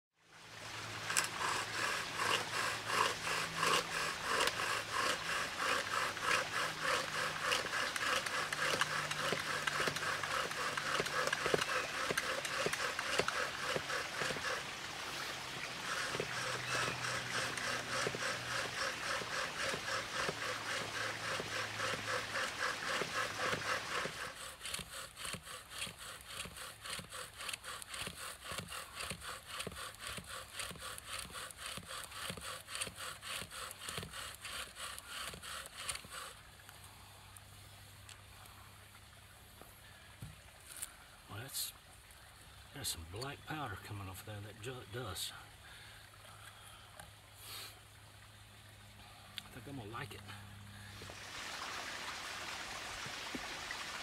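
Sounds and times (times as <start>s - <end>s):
wooden spindle grinding in fireboard: 1.0s - 36.4s.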